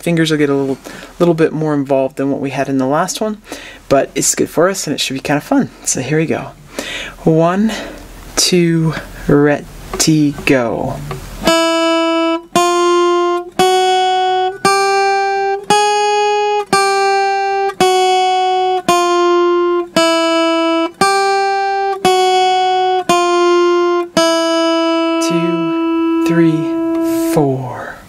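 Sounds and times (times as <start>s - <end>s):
plucked guitar melody: 9.7s - 27.7s.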